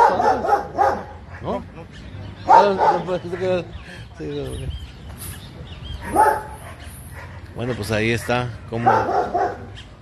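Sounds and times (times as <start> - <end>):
dog barking: 0.0 - 1.6, 2.4 - 3.6, 6.0 - 7.4, 8.1 - 9.8.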